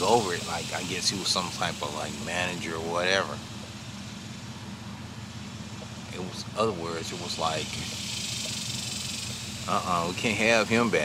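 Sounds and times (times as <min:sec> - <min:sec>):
background hiss: 0:00.0 - 0:11.0
engine idling hum: 0:00.0 - 0:11.0.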